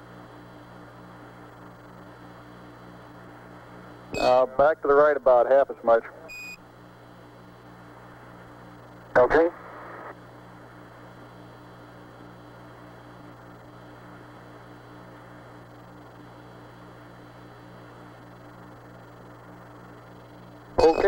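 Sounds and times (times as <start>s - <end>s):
radio channel hiss and hum: 0.0s - 21.0s
faint repeating low tone: 4.2s - 4.5s.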